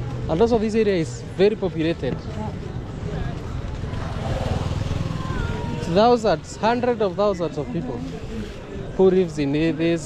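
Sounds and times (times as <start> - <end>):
small motorcycle engine running: 3.5 - 6.3.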